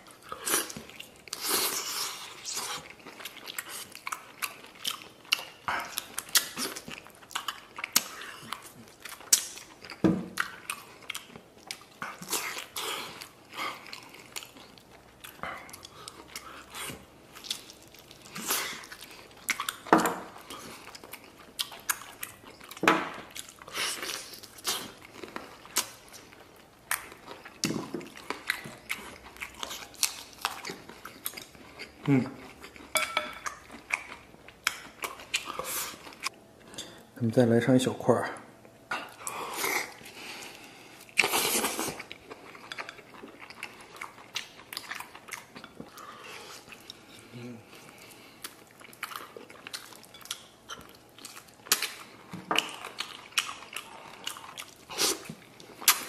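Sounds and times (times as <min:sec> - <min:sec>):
person chewing meat: 0:00.0 - 0:37.1, 0:38.9 - 0:56.0.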